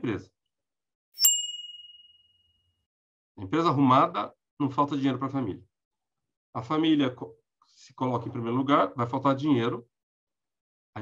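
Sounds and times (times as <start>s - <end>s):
high ringing ding: 1.2s - 2.5s.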